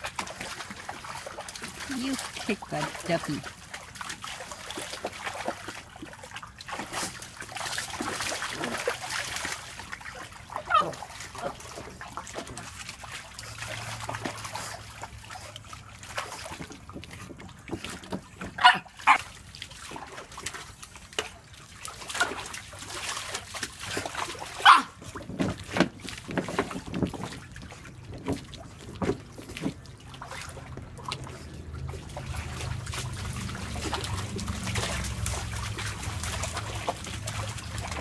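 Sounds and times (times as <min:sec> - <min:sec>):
dog splashing water in a pool: 0:00.0 - 0:38.0.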